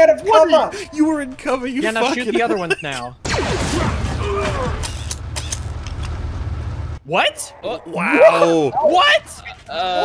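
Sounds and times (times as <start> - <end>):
person laughing: 1.9 - 3.1
sci-fi blaster shots: 3.2 - 4.8.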